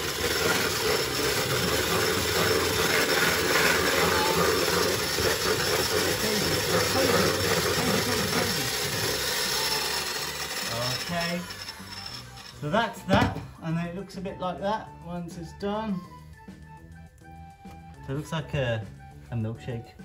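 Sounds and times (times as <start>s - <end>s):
beaters whisking batter in bowl: 0.0s - 12.7s
electric hand mixer running: 0.0s - 13.3s.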